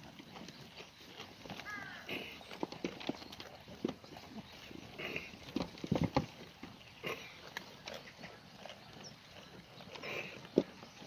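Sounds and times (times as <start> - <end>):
dry vines rustling: 0.0 - 10.6
goats chewing and crunching: 0.0 - 11.0.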